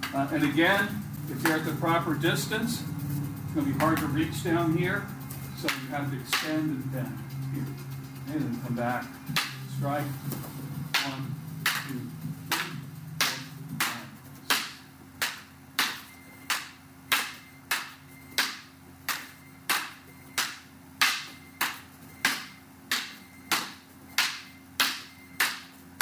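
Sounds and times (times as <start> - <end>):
fighting sticks clacking: 5.2 - 25.7.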